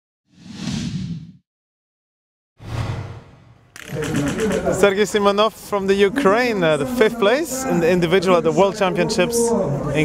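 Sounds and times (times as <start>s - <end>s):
whoosh sound effect: 2.6s - 3.8s.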